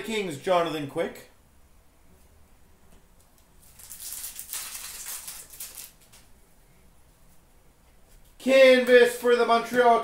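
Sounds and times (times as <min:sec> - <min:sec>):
foil wrapper crinkling and tearing: 0:03.6 - 0:06.2.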